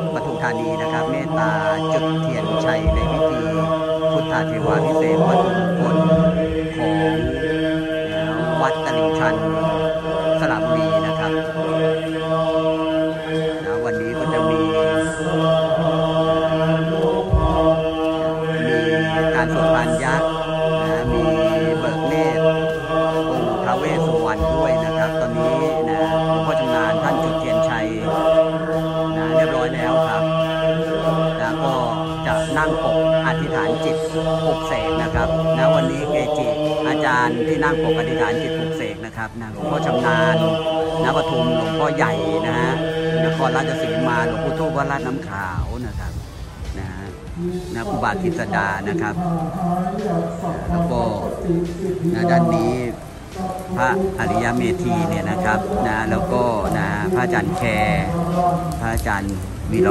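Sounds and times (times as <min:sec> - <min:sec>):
monks chanting in monotone: 0:00.0 - 0:59.9.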